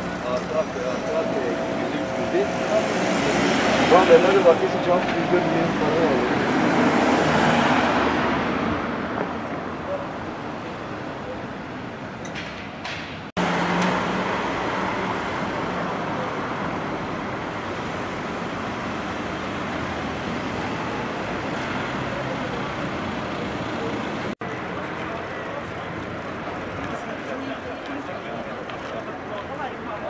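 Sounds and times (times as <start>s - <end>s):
cars passing on road: 0.0s - 30.0s.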